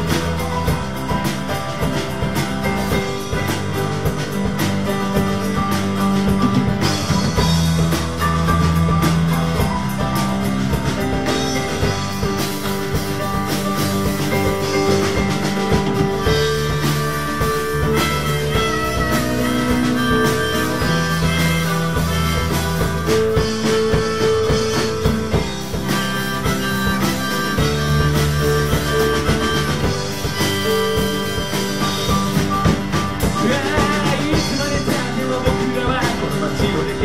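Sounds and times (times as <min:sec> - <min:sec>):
drum kit: 0:00.0 - 0:37.0
keyboard: 0:00.0 - 0:37.0.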